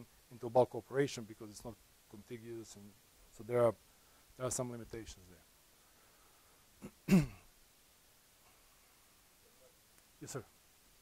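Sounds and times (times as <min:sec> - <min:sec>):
man coughing: 0:06.8 - 0:07.4.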